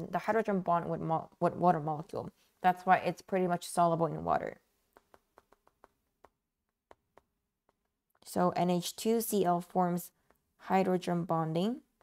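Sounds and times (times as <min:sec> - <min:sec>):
stylus tapping on tablet screen: 0:04.7 - 0:08.6, 0:09.8 - 0:11.1.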